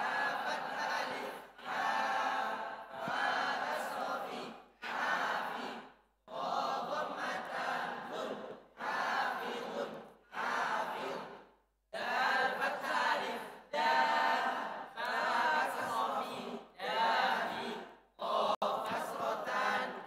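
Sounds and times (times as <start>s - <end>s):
group of voices reciting in unison: 0.0s - 20.0s.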